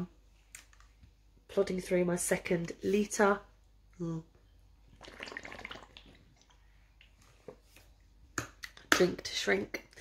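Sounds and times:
sipping and swallowing water: 4.9s - 7.1s.

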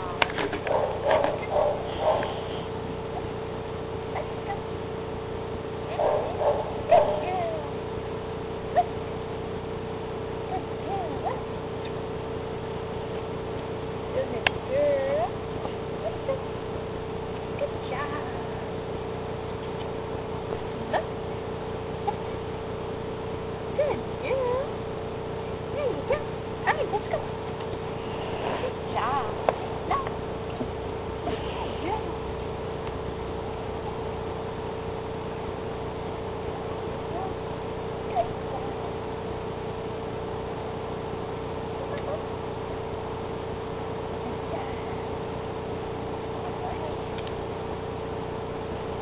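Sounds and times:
steady hum: 0.0s - 49.0s.

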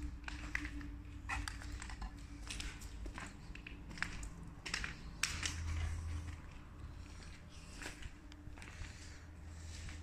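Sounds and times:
footsteps crunching on grit: 2.3s - 10.0s.

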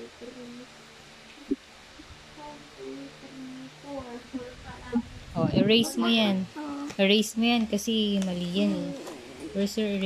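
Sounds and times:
person humming softly: 0.0s - 0.8s, 2.3s - 5.0s.

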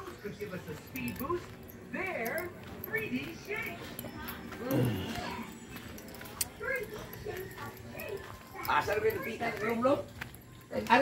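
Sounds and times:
voices talking: 0.0s - 11.0s.

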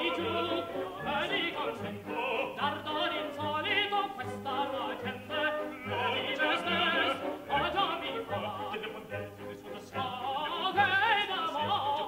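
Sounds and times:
operatic men singing: 0.0s - 12.0s
orchestra playing: 0.0s - 12.0s.

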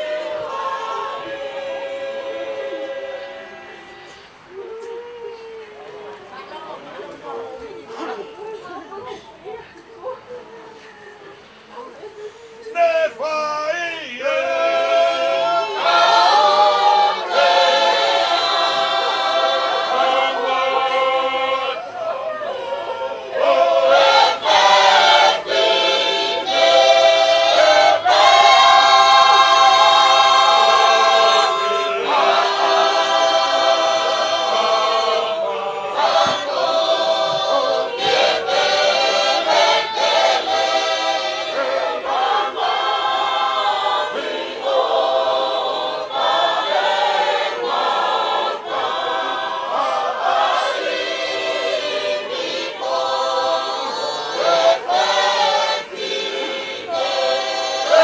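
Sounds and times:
choir singing a hymn: 0.0s - 4.7s, 12.6s - 58.0s.

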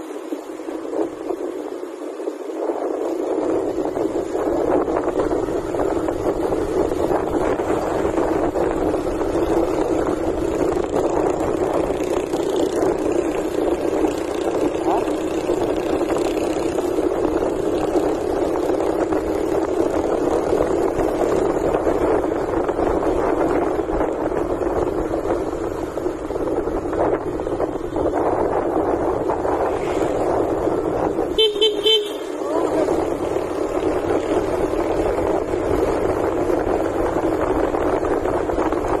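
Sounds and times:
motorcycle road noise: 0.0s - 39.0s
wind rush: 0.0s - 39.0s
vehicle horn short toots: 31.3s - 32.4s.

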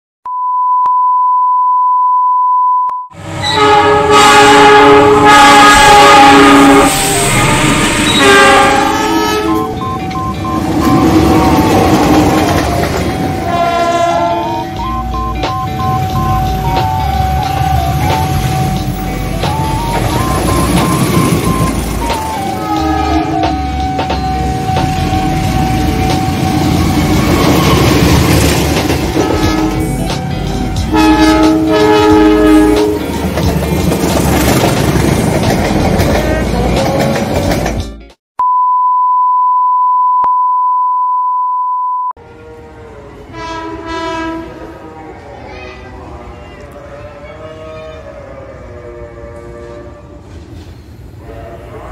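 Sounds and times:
steady pure beep tone: 0.2s - 3.1s, 9.6s - 11.4s, 14.5s - 17.6s, 38.4s - 42.2s
train passing with rumble: 3.2s - 38.0s, 42.2s - 51.9s
locomotive horn blasts: 3.4s - 11.4s, 13.1s - 16.4s, 22.4s - 27.4s, 29.1s - 33.2s, 42.2s - 44.8s.

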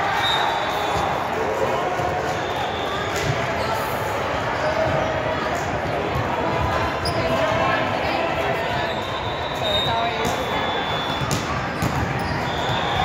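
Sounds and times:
volleyballs being hit and bouncing: 0.9s - 7.9s, 10.0s - 13.0s
din of indistinct voices: 1.4s - 12.0s.

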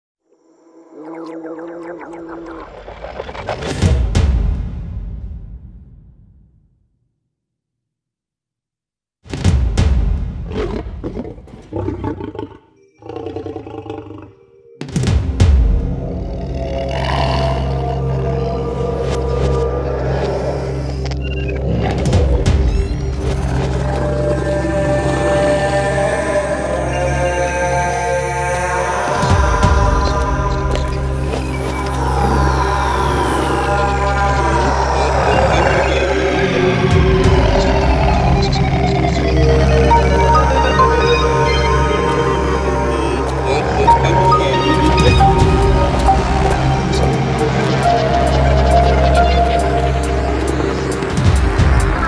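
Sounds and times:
held drone: 15.8s - 52.0s
deep growling rumble: 28.5s - 41.1s.

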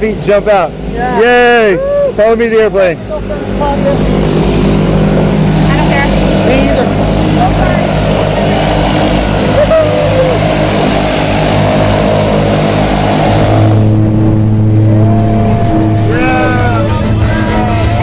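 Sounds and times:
propeller aircraft engine drone: 0.0s - 18.0s.

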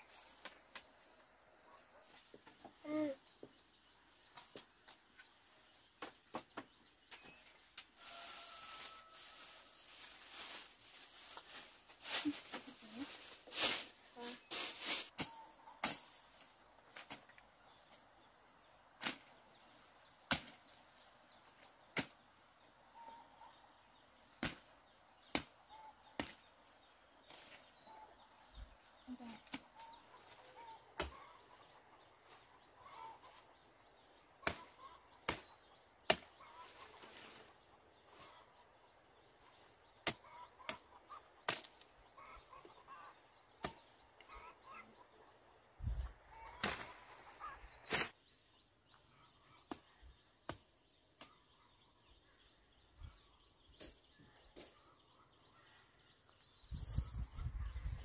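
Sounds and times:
cut brush rustling: 9.5s - 16.3s, 46.5s - 48.2s
machete chopping weeds and soil: 19.0s - 19.6s, 20.3s - 20.8s, 21.9s - 22.2s, 24.4s - 26.5s, 31.0s - 31.2s, 34.4s - 36.4s, 40.0s - 40.8s, 41.4s - 41.9s, 43.6s - 44.0s, 46.5s - 47.2s, 47.8s - 48.3s.

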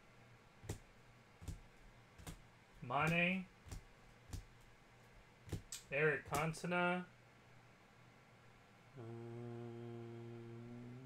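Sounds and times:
man humming low note: 8.9s - 11.0s.

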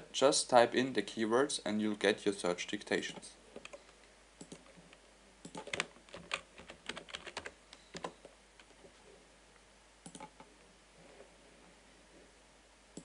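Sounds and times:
typing on a computer keyboard: 5.4s - 8.8s, 10.0s - 10.5s.

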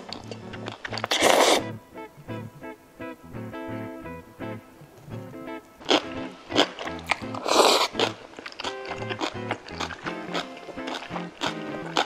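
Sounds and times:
background music: 0.0s - 12.0s
person slurping noodles: 1.0s - 1.7s, 7.4s - 8.2s.

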